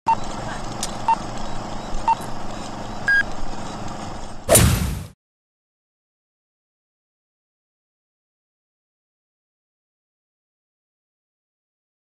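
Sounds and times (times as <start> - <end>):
electronic countdown beeps: 0.1 - 0.3, 1.1 - 3.3
steady background hum: 0.1 - 5.2.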